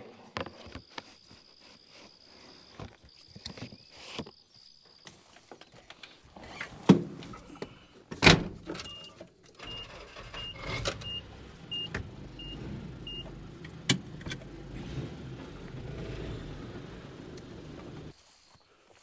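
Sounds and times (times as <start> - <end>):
truck engine rumble: 9.6 - 18.2
warning chime beeps: 9.7 - 13.3.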